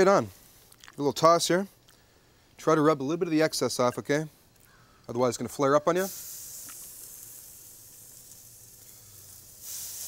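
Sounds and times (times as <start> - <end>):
chicken sizzling on a grill: 5.8 - 10.0.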